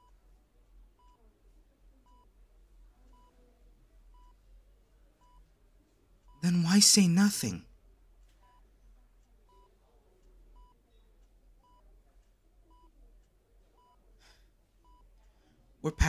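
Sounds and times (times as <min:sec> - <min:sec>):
patient monitor beeping: 0:01.0 - 0:01.3, 0:02.0 - 0:02.4, 0:03.0 - 0:03.5, 0:04.1 - 0:04.4, 0:05.2 - 0:05.5, 0:06.2 - 0:07.6, 0:08.3 - 0:08.7, 0:09.4 - 0:09.8, 0:10.5 - 0:10.8, 0:11.6 - 0:11.9, 0:12.6 - 0:13.0, 0:13.6 - 0:15.2.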